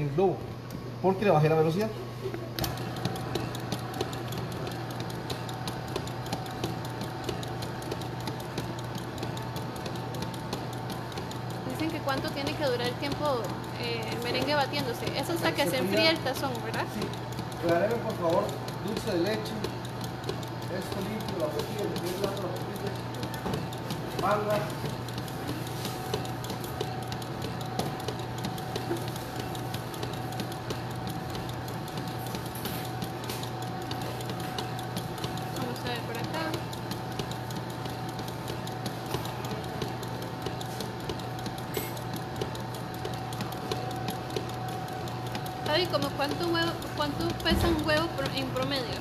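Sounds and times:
electric stand mixer running: 1.0 - 49.0.

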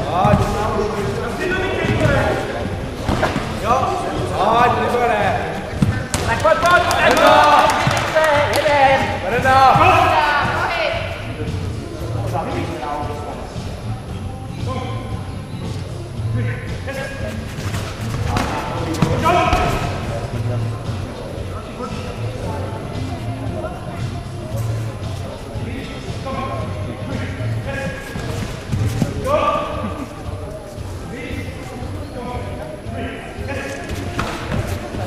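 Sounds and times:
voices shouting in a hall: 0.0 - 17.5, 18.4 - 35.0
feet striking mat: 1.7 - 4.3, 5.7 - 10.5, 27.7 - 29.5, 33.8 - 35.0.

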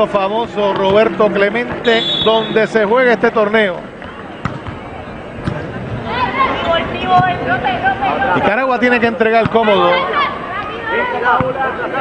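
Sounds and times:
crowd murmur: 0.0 - 12.0
ball thuds: 0.7 - 1.0, 4.0 - 4.8.

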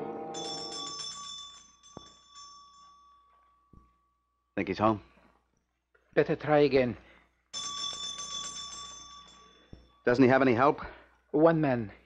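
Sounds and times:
doorbell ringing metallic trill: 0.0 - 4.5, 7.6 - 10.2.

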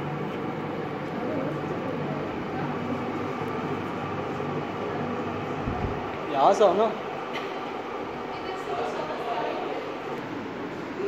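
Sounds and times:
indoor hall hum and hiss: 0.0 - 11.0
faint distant voices: 0.1 - 11.0.

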